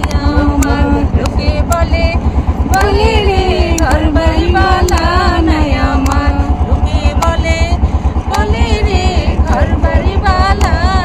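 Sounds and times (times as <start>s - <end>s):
boat engine chugging: 0.0s - 11.0s.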